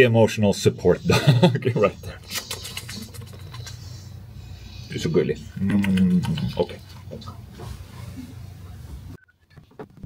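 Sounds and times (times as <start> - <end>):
room noise hum: 0.0 - 10.0.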